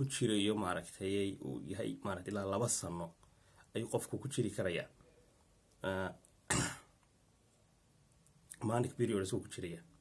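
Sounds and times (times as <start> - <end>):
man speaking: 0.0 - 5.0, 5.8 - 6.7, 8.5 - 10.0
man clearing throat: 6.5 - 6.9.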